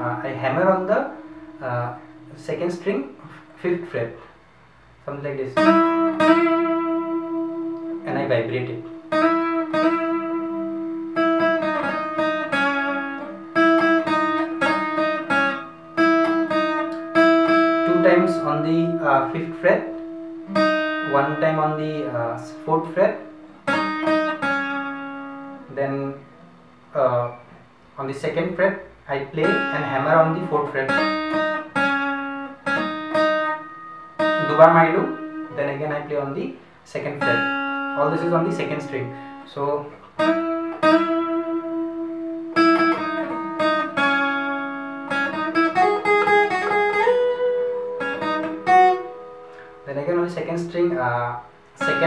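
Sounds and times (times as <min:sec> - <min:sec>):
acoustic guitar melody: 0:00.0 - 0:52.0.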